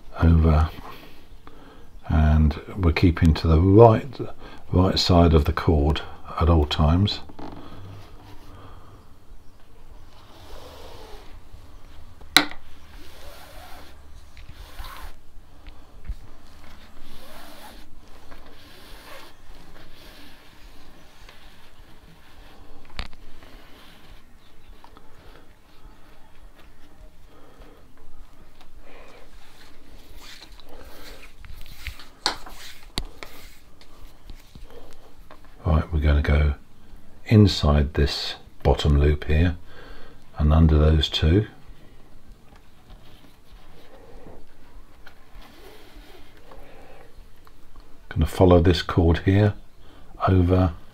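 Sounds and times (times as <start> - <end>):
paracord rasping through loops: 10.2 - 15.2, 16.4 - 24.8, 29.3 - 35.0.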